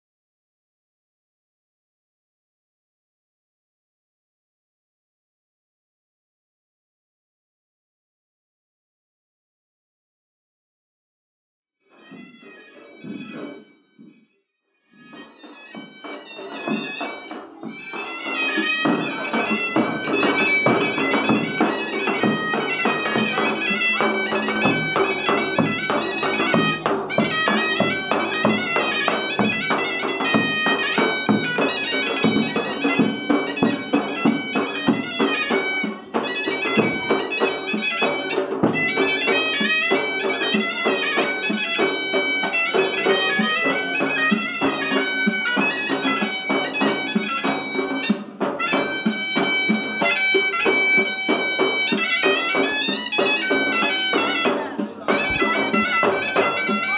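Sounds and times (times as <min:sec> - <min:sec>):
shrill zurna folk melody: 0:11.9 - 0:56.9
drum beat: 0:15.2 - 0:56.9.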